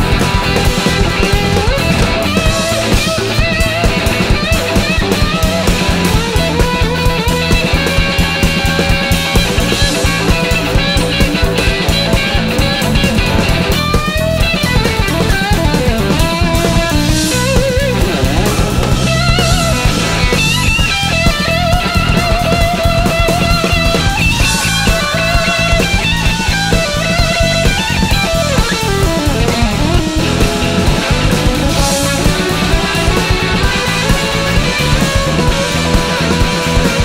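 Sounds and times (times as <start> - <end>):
bass and drums: 0.0 - 37.0
electric guitar solo: 0.0 - 37.0.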